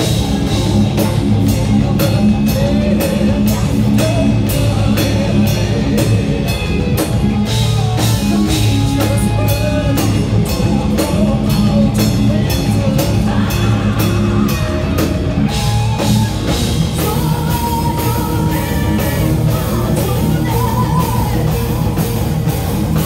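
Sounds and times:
distorted electric guitars: 0:00.0 - 0:23.0
heavy metal band playing live: 0:00.0 - 0:23.0.

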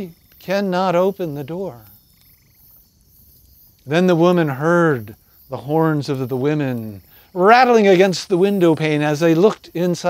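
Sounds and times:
man's voice: 0:00.0 - 0:01.8, 0:03.9 - 0:10.0
high insect hum: 0:00.0 - 0:10.0.

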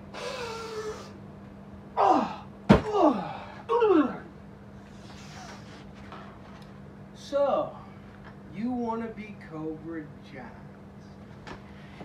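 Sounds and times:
man crying out: 0:02.0 - 0:04.3
man yelping: 0:02.0 - 0:04.3.

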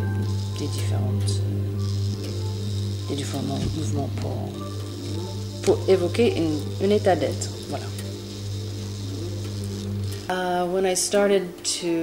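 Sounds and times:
electric motor humming: 0:00.0 - 0:11.3.

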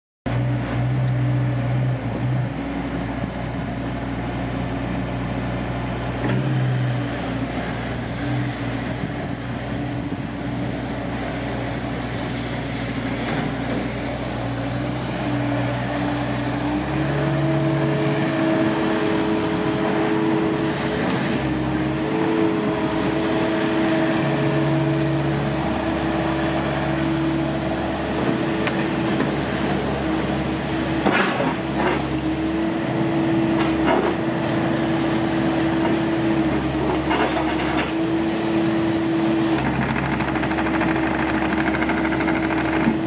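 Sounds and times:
excavator diesel engine running: 0:00.3 - 0:43.0.

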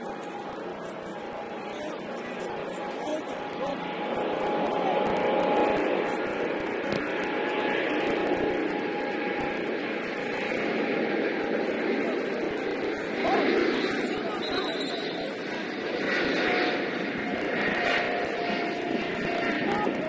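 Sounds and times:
distant voices of players: 0:00.0 - 0:20.0.

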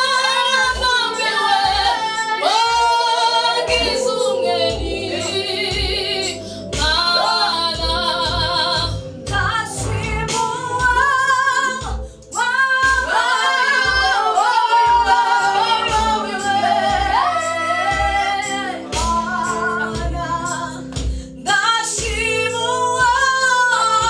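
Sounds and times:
voices singing in harmony: 0:00.0 - 0:24.0
woman singing lead: 0:00.0 - 0:24.0
steady low beat: 0:02.7 - 0:21.3.

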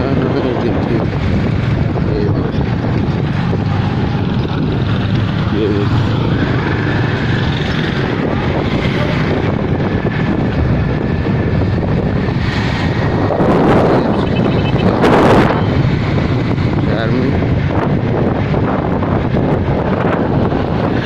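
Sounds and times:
wind rushing over microphone: 0:00.0 - 0:21.0
motorcycle engine running: 0:01.2 - 0:12.0.

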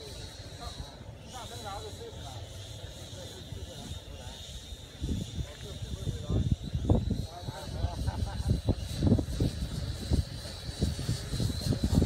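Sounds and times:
toy drone motors whining: 0:00.0 - 0:12.0
wind rumbling on microphone: 0:02.6 - 0:12.0.

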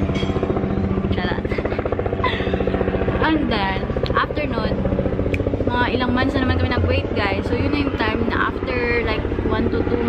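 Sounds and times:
pulsing low engine drone: 0:00.0 - 0:10.0
woman's voice: 0:01.0 - 0:04.9, 0:05.6 - 0:10.0.

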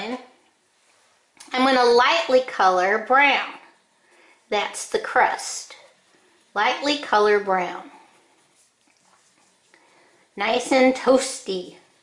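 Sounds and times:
crayon scratching on paper: 0:06.6 - 0:11.9.

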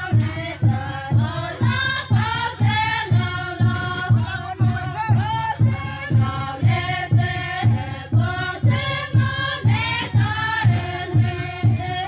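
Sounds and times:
women singing in chorus: 0:00.0 - 0:04.4, 0:05.1 - 0:12.0.

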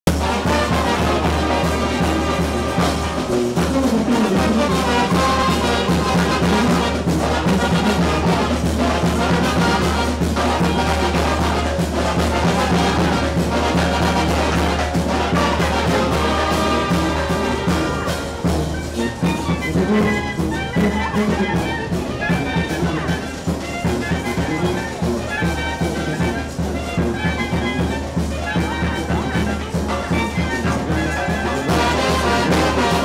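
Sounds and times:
street band playing dance music: 0:00.0 - 0:33.0.

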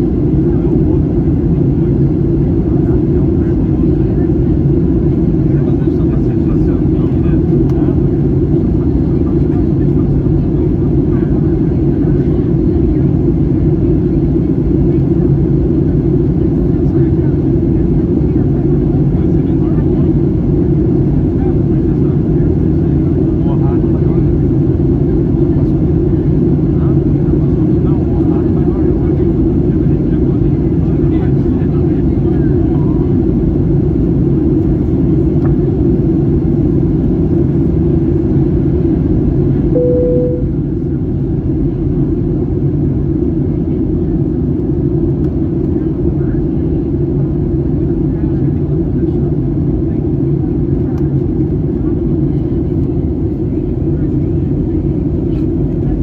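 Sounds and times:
airplane cabin drone: 0:00.0 - 0:56.0.

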